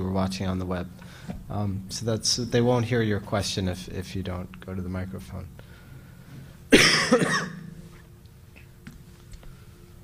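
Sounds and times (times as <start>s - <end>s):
person coughing: 6.7s - 7.7s.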